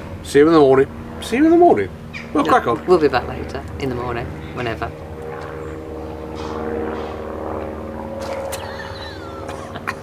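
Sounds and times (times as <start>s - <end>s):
engine drone: 0.0s - 10.0s.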